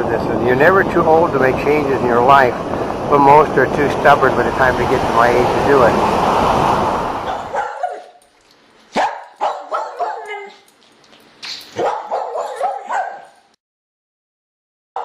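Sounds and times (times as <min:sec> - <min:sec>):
wind: 0:00.0 - 0:13.6
dog barking: 0:07.2 - 0:08.2, 0:08.9 - 0:10.7, 0:11.8 - 0:13.4.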